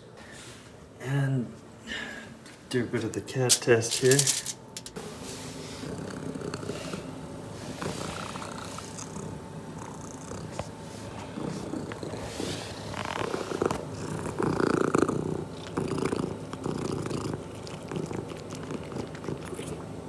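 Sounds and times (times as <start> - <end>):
cat eating: 5.8 - 20.0
cat purring: 5.8 - 20.0.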